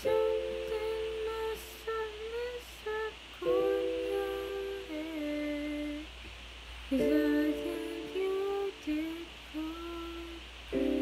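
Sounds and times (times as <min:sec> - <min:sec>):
woman humming: 0:00.0 - 0:06.1, 0:06.9 - 0:11.0.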